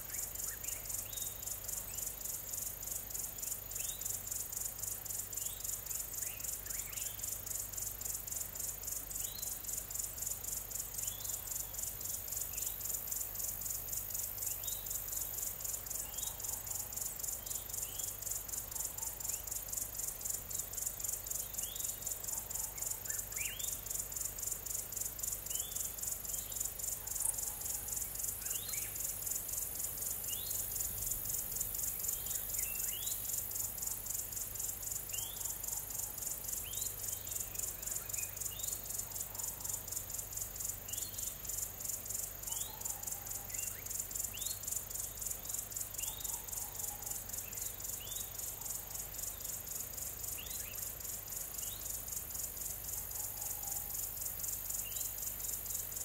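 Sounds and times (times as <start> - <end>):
insects chorus pulsing: 0.0 - 56.0.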